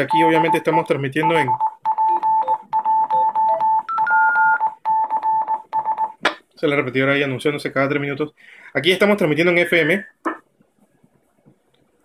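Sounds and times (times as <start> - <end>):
morse code beeping tone: 0.0 - 6.2.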